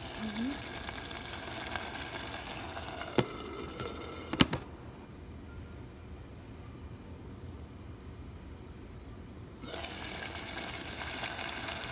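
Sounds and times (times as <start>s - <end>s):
meat sauce sizzling in a hot pan: 0.0s - 4.3s, 9.7s - 11.9s.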